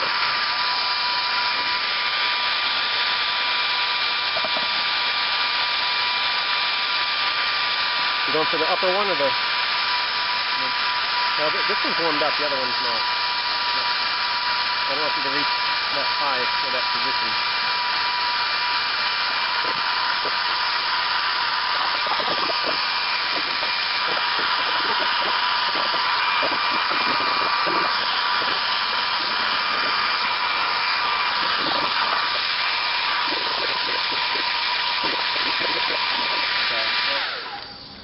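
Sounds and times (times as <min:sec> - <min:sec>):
hair dryer running: 0:00.0 - 0:38.0.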